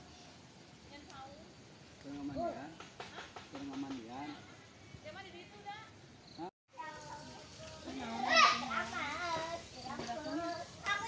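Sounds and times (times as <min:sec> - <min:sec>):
children talking and calling out: 0:06.7 - 0:11.0.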